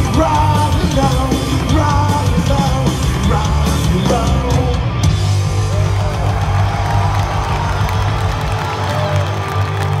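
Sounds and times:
live punk rock band: 0.0s - 10.0s
crowd cheering and whooping: 5.3s - 10.0s.

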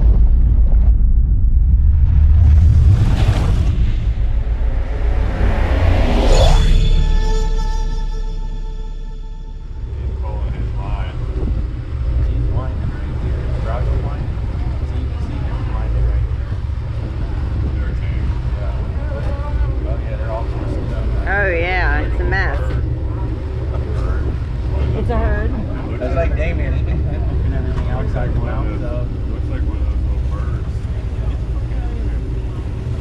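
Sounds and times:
boat engine rumbling: 0.0s - 33.0s.

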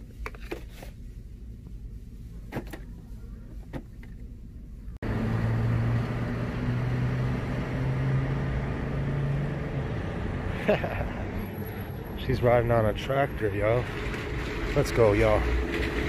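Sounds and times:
outdoor noise: 0.0s - 16.0s.

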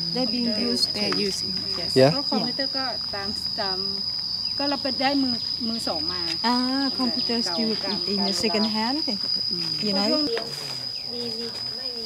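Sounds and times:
people talking: 0.0s - 4.0s, 4.6s - 12.0s
high-pitched insect drone: 0.0s - 12.0s.

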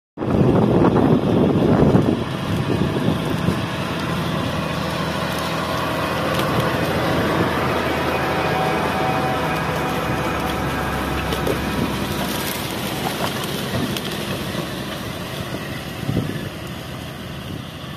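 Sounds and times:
tractor diesel engine under load: 0.2s - 17.9s.

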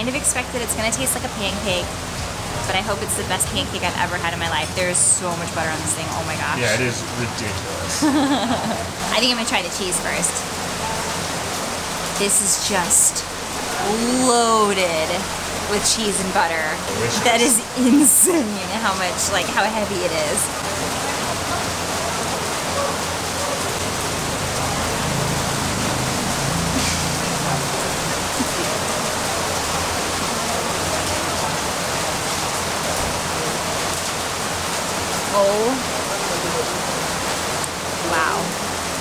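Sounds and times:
rain falling steadily: 0.0s - 39.0s.

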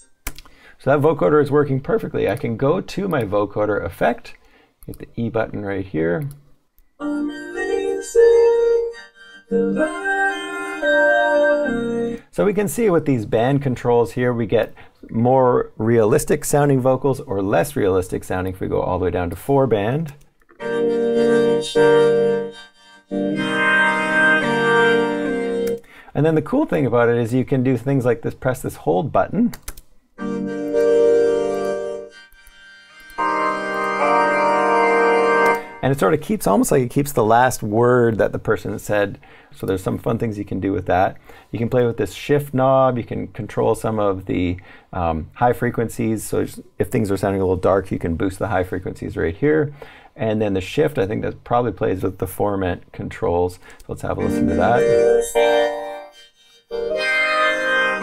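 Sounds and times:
vocoded voice synth chords: 7.0s - 12.2s, 20.5s - 25.8s, 54.2s - 58.0s.

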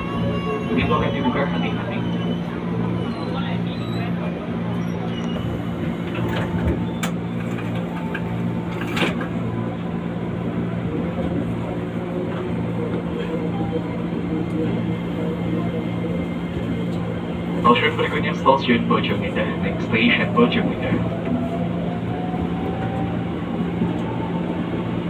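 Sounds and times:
electric train interior hum: 0.0s - 25.0s.

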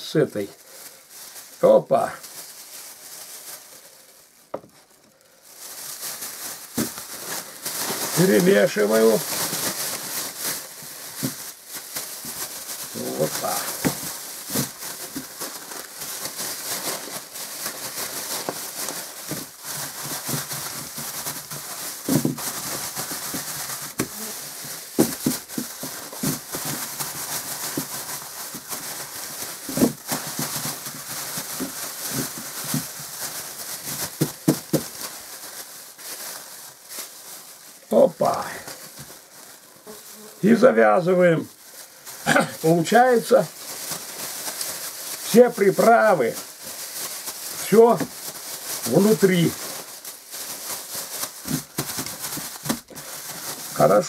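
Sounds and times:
plastic bag crinkling: 0.0s - 54.0s.

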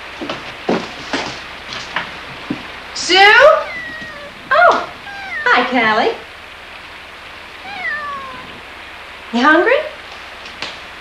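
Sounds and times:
cat meowing: 3.2s - 6.2s, 7.6s - 8.7s.

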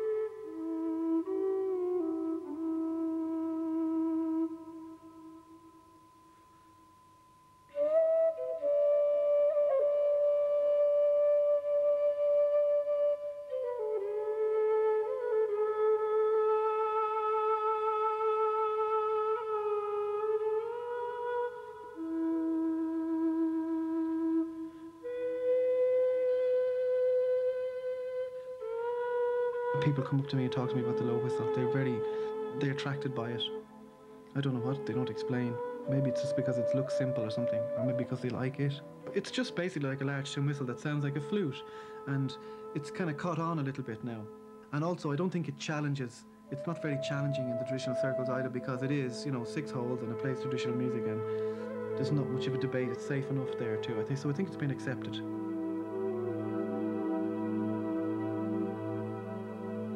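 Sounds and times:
low whistle slow melody: 0.0s - 59.9s
steady high held tone: 29.8s - 59.9s.

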